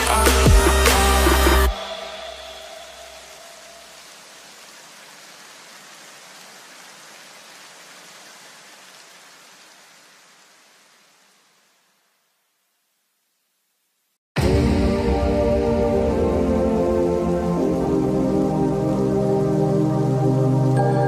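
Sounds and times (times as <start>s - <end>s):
electronic music: 0.0s - 3.7s, 14.4s - 21.0s
steady hiss: 0.0s - 14.2s, 15.1s - 21.0s.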